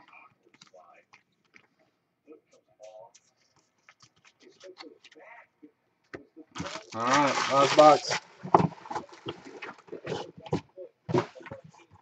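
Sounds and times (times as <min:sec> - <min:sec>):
cardboard box and plastic rustling: 0:06.6 - 0:12.0.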